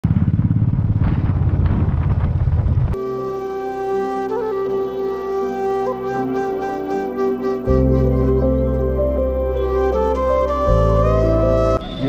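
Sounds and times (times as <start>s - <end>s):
motorcycle engine running: 0.0s - 3.0s.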